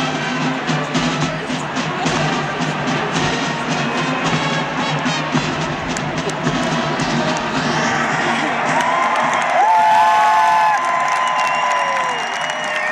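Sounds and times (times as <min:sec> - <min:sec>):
military marching band: 0:00.0 - 0:12.9
stadium crowd cheering: 0:00.0 - 0:12.9.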